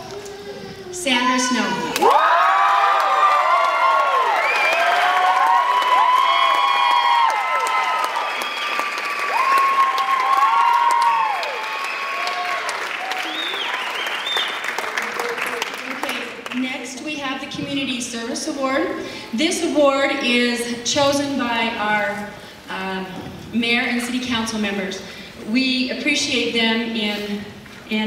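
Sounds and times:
high whooping cheers: 1.2s - 15.5s
audience clapping: 2.0s - 16.9s.

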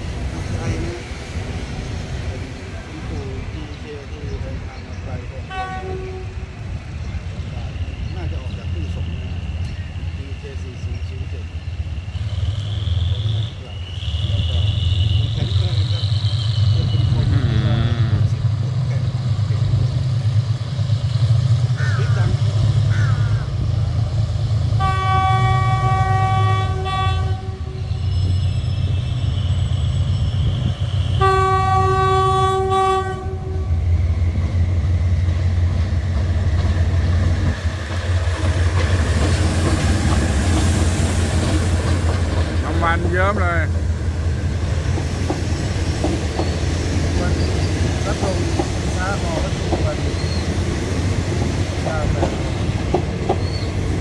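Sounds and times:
locomotive engine rumbling: 0.0s - 54.0s
train horn blasts: 5.5s - 6.4s, 24.8s - 28.1s, 31.0s - 33.9s.

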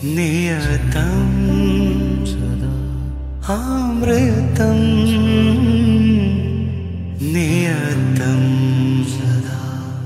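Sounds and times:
music: 0.0s - 10.0s.

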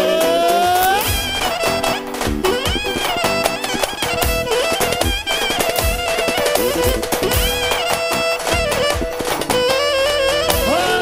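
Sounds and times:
clarinet folk melody: 0.0s - 11.0s
steady band beat: 0.7s - 9.7s.

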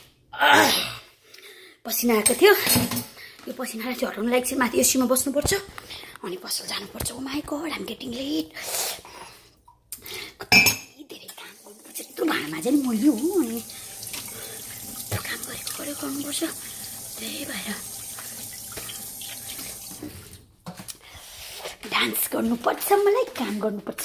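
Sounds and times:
person's voice: 3.4s - 8.6s, 11.0s - 13.7s, 15.1s - 16.6s, 17.2s - 17.9s, 21.8s - 24.0s
tap water running: 11.4s - 20.8s.

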